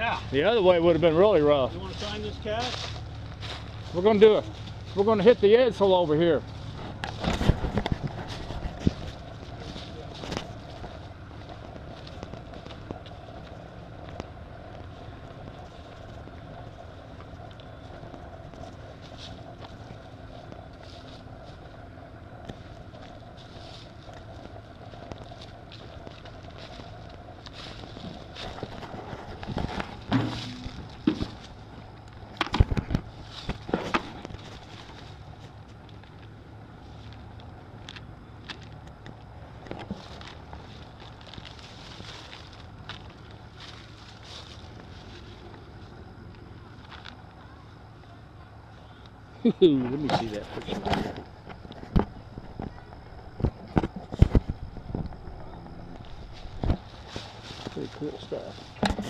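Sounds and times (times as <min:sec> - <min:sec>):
vehicle engine humming: 0:00.0 - 0:59.0
footsteps crunching dry leaves: 0:00.6 - 0:32.4, 0:39.9 - 0:45.9, 0:54.5 - 0:58.8
rustles and knocks: 0:24.4 - 0:36.3, 0:58.6 - 0:59.0.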